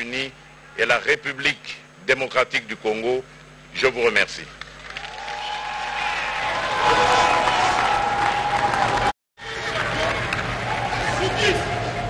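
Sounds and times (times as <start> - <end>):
audience applause: 4.6 - 12.0.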